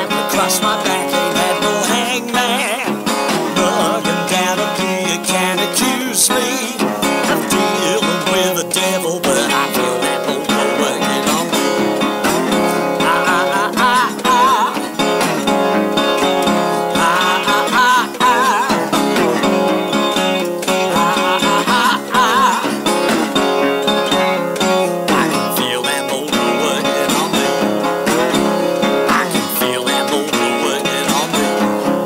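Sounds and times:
resonator guitar picked and strummed: 0.0 - 32.0.

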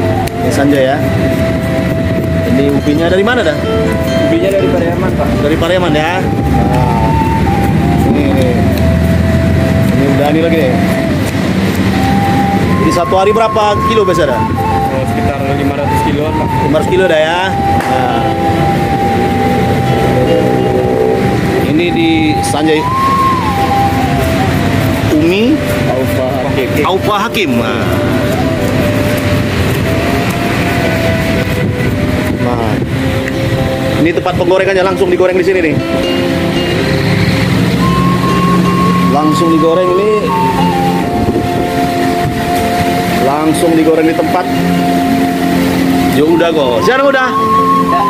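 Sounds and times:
busy workplace noise: 0.0 - 48.0.

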